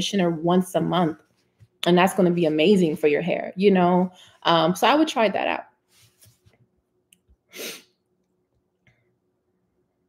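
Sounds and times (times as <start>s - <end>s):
sharp breath through nose: 7.5s - 7.9s.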